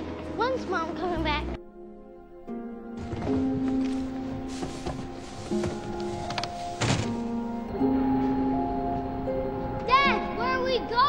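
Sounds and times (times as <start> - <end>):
background music of held tones: 0.0 - 11.0
dull thump: 4.6 - 7.4.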